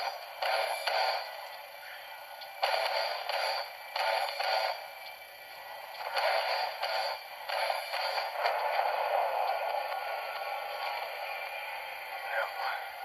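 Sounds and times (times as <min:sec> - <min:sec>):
action film soundtrack on tv speaker: 0:00.0 - 0:13.0.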